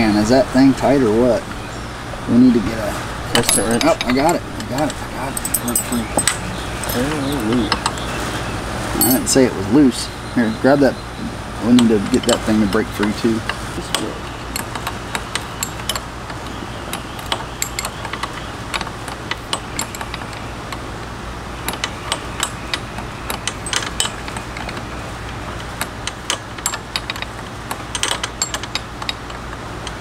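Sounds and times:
steady low hum: 0.0s - 30.0s
metal wrench clicking and clinking: 3.4s - 7.4s, 9.0s - 9.2s, 16.9s - 20.4s, 21.7s - 24.8s, 25.8s - 30.0s.

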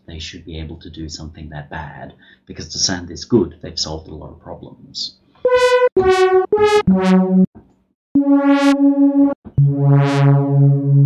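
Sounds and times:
synthesizer notes: 5.5s - 7.5s, 8.2s - 11.0s.

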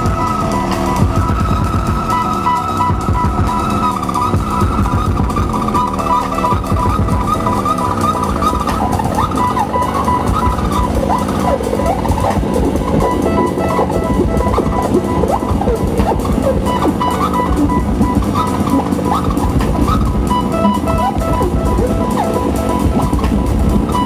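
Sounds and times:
modular synthesizer music: 0.0s - 24.0s
pulsing high tone: 0.0s - 24.0s.

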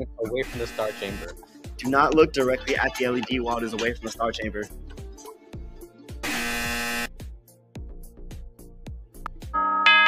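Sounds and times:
background music with steady beat: 0.0s - 10.0s
loud buzzer: 0.4s - 1.4s, 6.2s - 7.2s.

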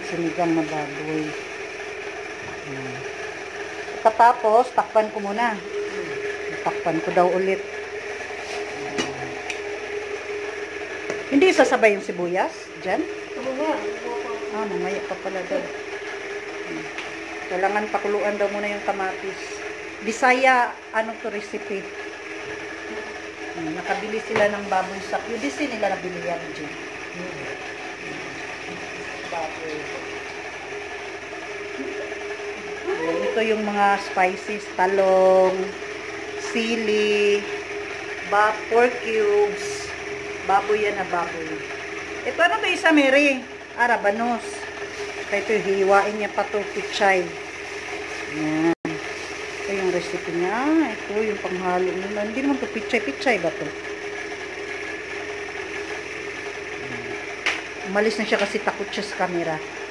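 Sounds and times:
whirring machine hum: 0.0s - 59.9s.

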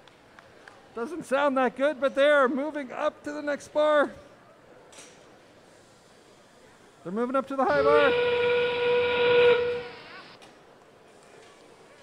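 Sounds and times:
recorded steam-train whistle: 7.7s - 10.4s.

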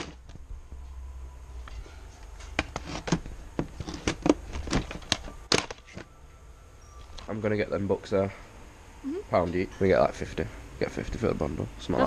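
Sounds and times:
plastic cases clacking: 2.5s - 6.1s.

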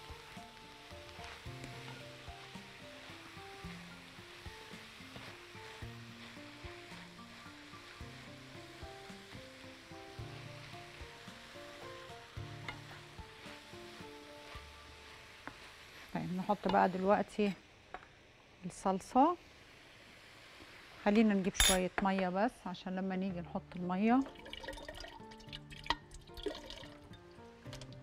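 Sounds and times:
soft background music: 0.0s - 17.4s, 21.0s - 28.0s
meat sizzling in a frying pan: 0.0s - 23.0s
spatula stirring: 1.1s - 8.9s, 10.9s - 17.4s.

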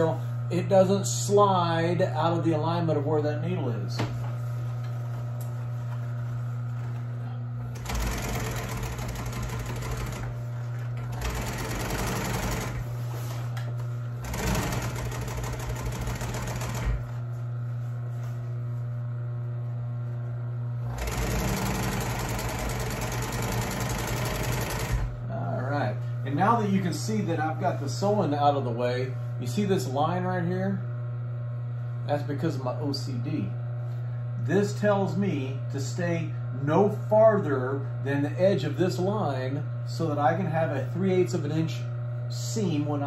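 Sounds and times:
motor humming: 0.0s - 43.0s
sewing machine stitching: 7.7s - 10.4s, 11.0s - 12.9s, 14.2s - 17.2s, 20.9s - 25.1s.

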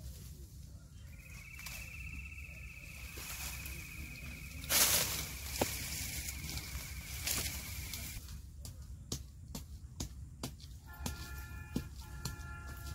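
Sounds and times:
branches and reeds rustling: 0.0s - 9.1s
low outdoor rumble: 0.0s - 10.9s
high-pitched insect trill: 1.2s - 8.2s.

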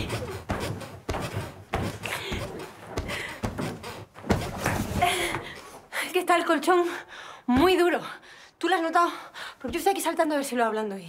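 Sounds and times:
feet thudding on a mattress: 0.0s - 5.6s.

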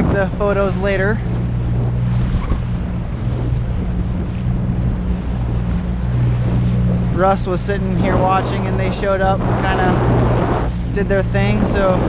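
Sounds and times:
outboard motor running: 0.0s - 12.0s
water splashing along hull: 0.0s - 12.0s
wind on microphone: 0.0s - 12.0s.

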